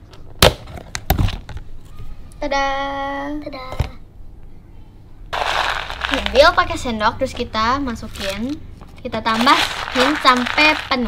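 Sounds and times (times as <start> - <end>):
dry pellets rattling in plastic tub: 5.4 - 6.8, 9.2 - 11.0.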